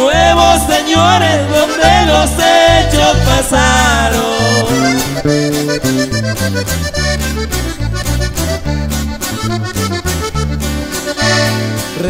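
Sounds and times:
button accordion melody: 0:00.0 - 0:12.0
alternating bass line: 0:00.1 - 0:11.8
rhythm guitar strokes: 0:00.2 - 0:12.0.

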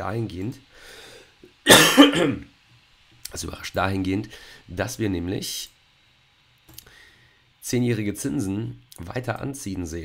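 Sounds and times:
man clearing his throat: 0:01.7 - 0:02.5.

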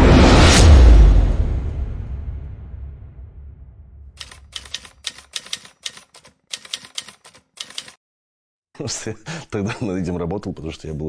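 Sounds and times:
typewriter key clicks: 0:04.2 - 0:08.0.

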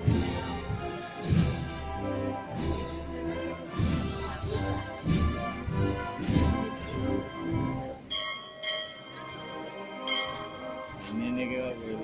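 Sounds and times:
bell ringing: 0:08.1 - 0:11.1.

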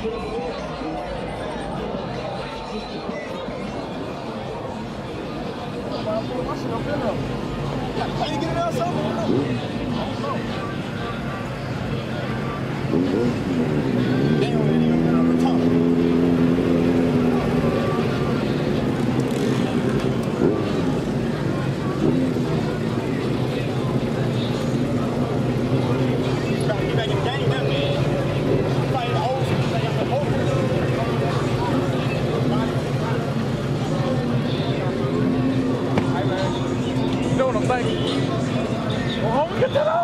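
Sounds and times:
people talking: 0:00.0 - 0:40.0
car engine idling: 0:04.9 - 0:39.5.

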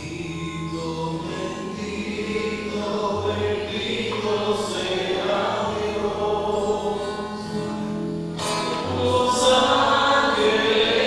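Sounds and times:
choir singing held notes: 0:00.0 - 0:07.6, 0:08.3 - 0:11.0.

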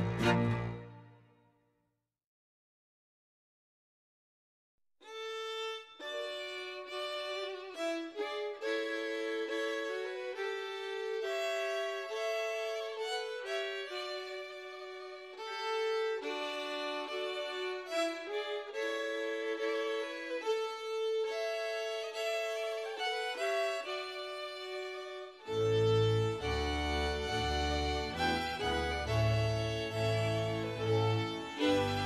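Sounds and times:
instrumental folk dance tune: 0:00.0 - 0:01.3, 0:05.1 - 0:32.0.

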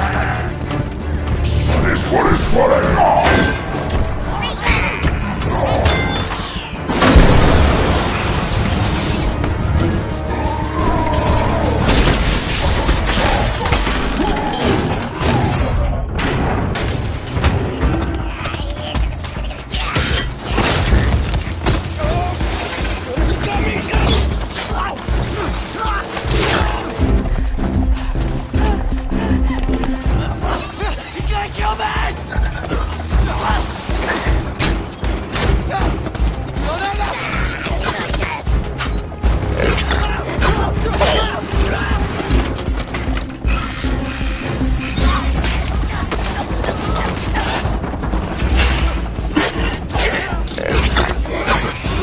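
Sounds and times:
film music score: 0:00.0 - 0:52.0.

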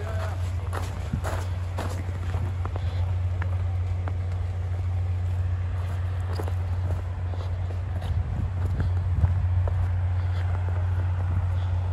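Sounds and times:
footsteps on snow: 0:00.0 - 0:11.9
steady low hum: 0:00.0 - 0:11.9.

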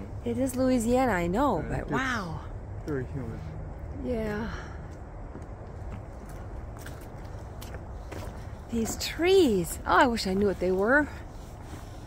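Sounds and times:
footsteps on wooden boardwalk: 0:03.7 - 0:12.0.

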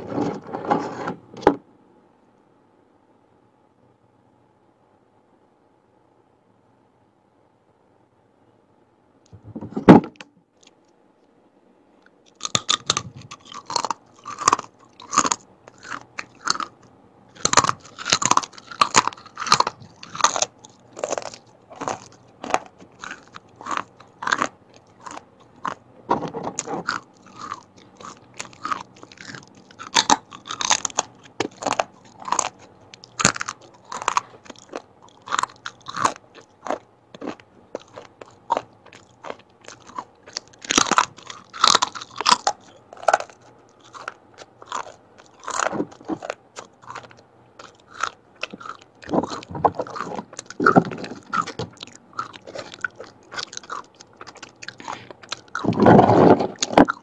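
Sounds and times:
chewing crunchy chips: 0:12.2 - 0:57.0.

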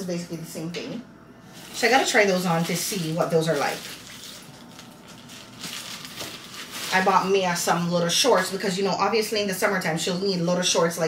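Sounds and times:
plastic bag rustling: 0:01.5 - 0:08.5.

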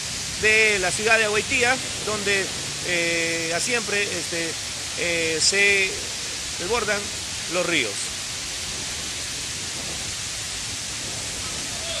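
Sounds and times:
heavy rain falling: 0:00.0 - 0:12.0.

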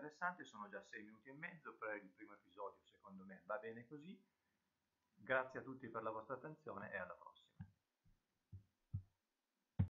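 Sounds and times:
soft low thumps: 0:08.5 - 0:09.2, 0:09.8 - 0:10.0.

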